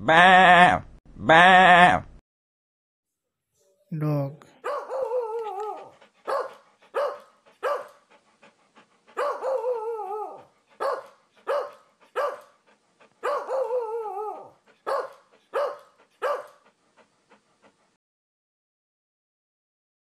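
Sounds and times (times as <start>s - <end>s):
dog barking and wavering cry: 4.5s - 8.1s, 9.1s - 12.6s, 13.2s - 16.8s.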